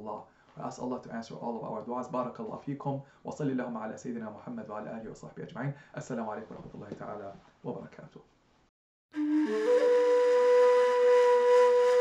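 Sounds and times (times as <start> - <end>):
flute-like long steady note: 9.1 - 12.0.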